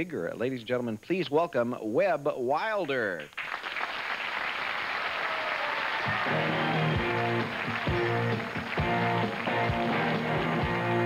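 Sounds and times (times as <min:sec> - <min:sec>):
audience applause: 0:03.3 - 0:11.0
rock band playing: 0:06.0 - 0:11.0.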